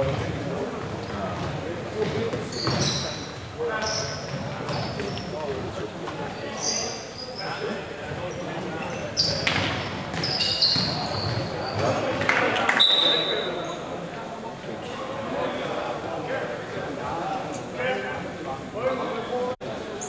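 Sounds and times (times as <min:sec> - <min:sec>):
shoes squeaking on floor: 0:02.0 - 0:05.6, 0:06.2 - 0:13.9.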